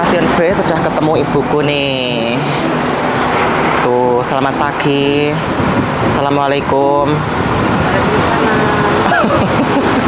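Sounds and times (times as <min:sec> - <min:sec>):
road vehicle passing: 0:00.0 - 0:10.0.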